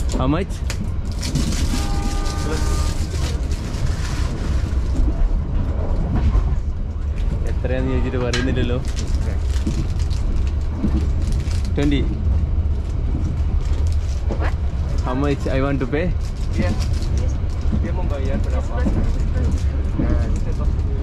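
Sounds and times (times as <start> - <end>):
train rumbling: 0.0 - 21.0
brief flat tone: 1.8 - 3.0.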